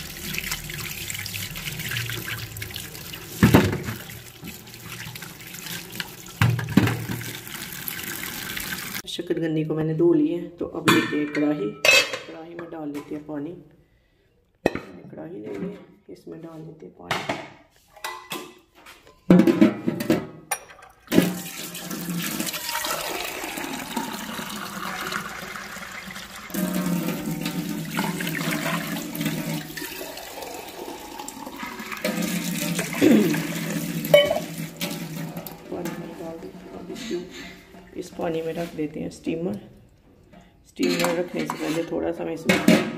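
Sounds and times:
water pouring into pan: 0:00.0 - 0:09.0, 0:20.8 - 0:36.9.

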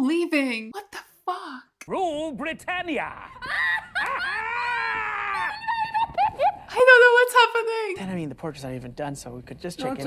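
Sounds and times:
woman squealing: 0:03.3 - 0:06.7.

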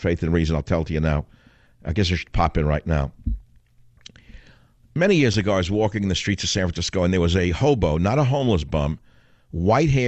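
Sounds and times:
man talking: 0:00.0 - 0:03.2, 0:05.0 - 0:10.0
short breath in: 0:01.3 - 0:01.8, 0:04.2 - 0:04.8, 0:09.0 - 0:09.5.

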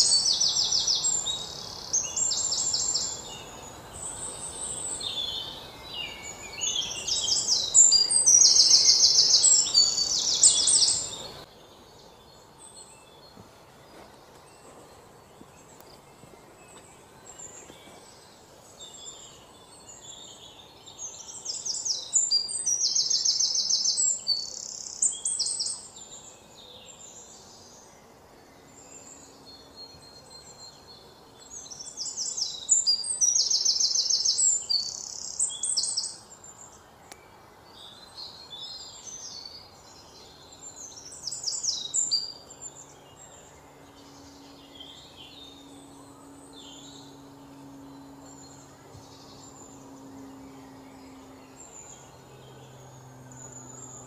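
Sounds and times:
bird singing trilled song: 0:00.0 - 0:54.0
faint steady background noise: 0:00.0 - 0:54.0.

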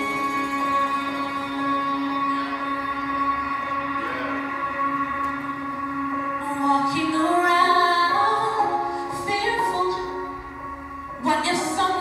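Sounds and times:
held instrumental chords: 0:00.0 - 0:12.0.

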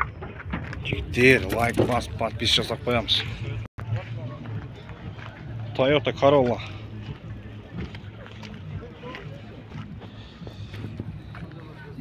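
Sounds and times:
faint distant voices: 0:01.2 - 0:12.0.

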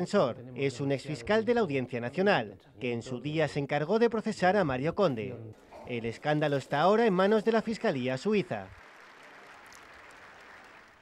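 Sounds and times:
faint crowd applause: 0:07.5 - 0:11.0.

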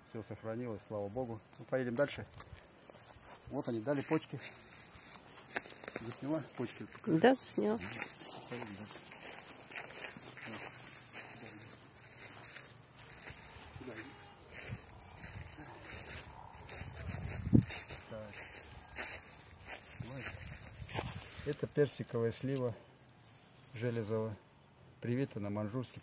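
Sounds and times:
footsteps through grass: 0:01.0 - 0:22.7.

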